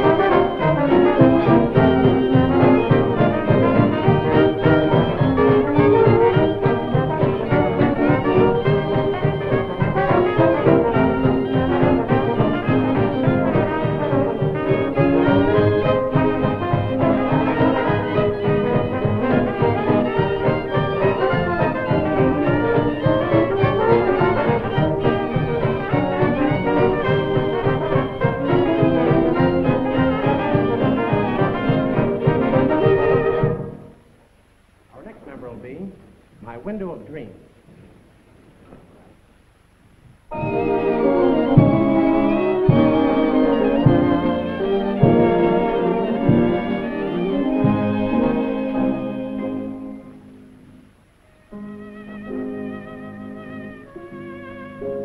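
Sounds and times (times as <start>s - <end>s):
dance orchestra playing: 0.0s - 34.0s, 40.3s - 50.1s.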